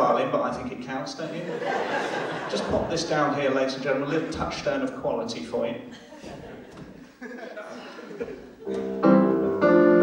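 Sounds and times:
electronic keyboard piano chords: 8.6 - 10.0.

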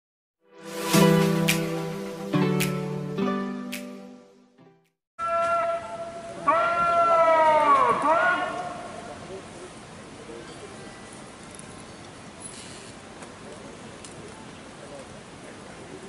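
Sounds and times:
person shouting drill command: 6.4 - 8.9.

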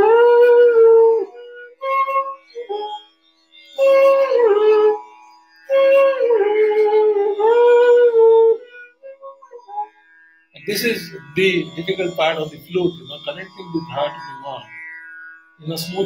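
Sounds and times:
bamboo flute melody: 0.0 - 3.2, 3.8 - 5.1, 5.7 - 10.0
steady drone note: 10.6 - 16.0.

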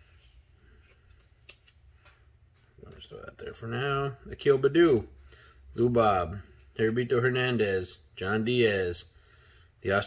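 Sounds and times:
handling cards clicks and slides: 0.2 - 2.2.

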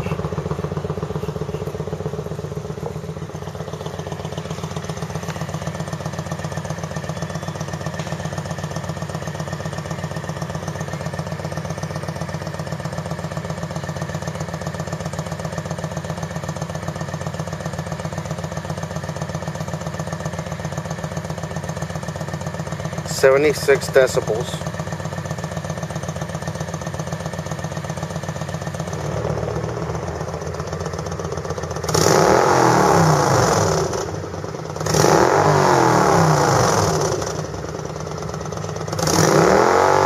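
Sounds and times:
motorcycle engine idling: 0.0 - 40.0.

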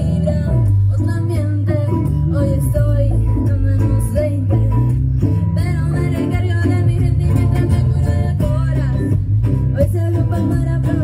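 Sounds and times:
deep steady bass line: 0.0 - 11.0
girl singing into microphone: 0.0 - 11.0.

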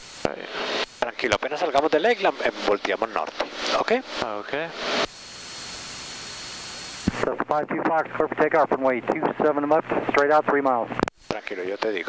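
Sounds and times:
static hiss: 0.0 - 7.3, 11.0 - 12.0.

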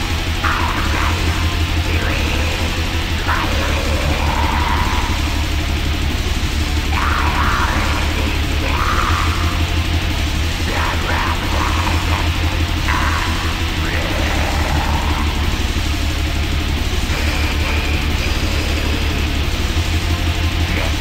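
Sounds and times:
distorted guitars: 0.0 - 21.0
fast dense drumming: 0.0 - 21.0.

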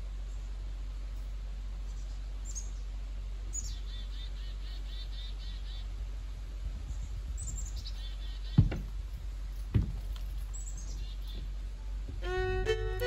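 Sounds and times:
low outdoor rumble: 0.0 - 13.0
faint bird chirp: 0.2 - 6.0, 6.9 - 8.7, 10.4 - 13.0
songbird trilling: 1.9 - 2.9, 3.5 - 5.9, 7.4 - 8.7, 10.5 - 11.5.

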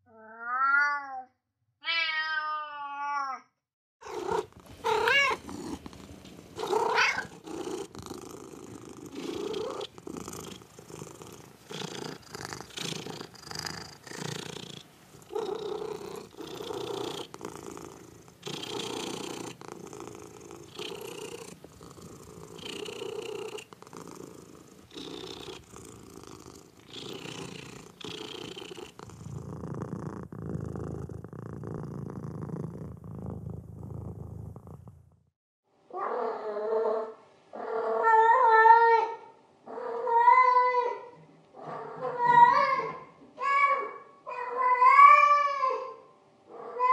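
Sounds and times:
cat meowing: 0.1 - 3.5, 4.8 - 5.4, 6.6 - 7.4
cat purring: 4.0 - 35.3.

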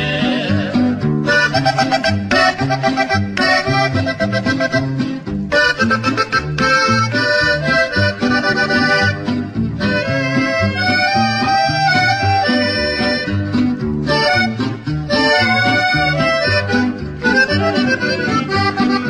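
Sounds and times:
alternating bass accompaniment: 0.0 - 19.0
button accordion melody: 0.0 - 19.0.

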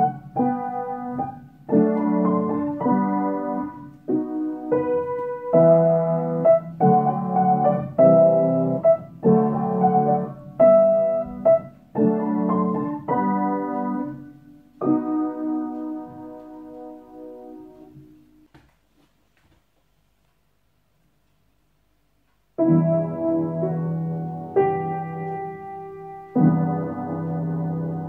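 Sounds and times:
piano chords: 0.0 - 18.5, 22.5 - 28.0.

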